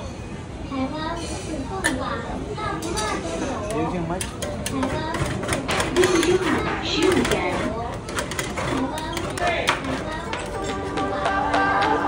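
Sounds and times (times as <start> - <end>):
metal spatulas scraping steel plate: 4.4 - 11.1.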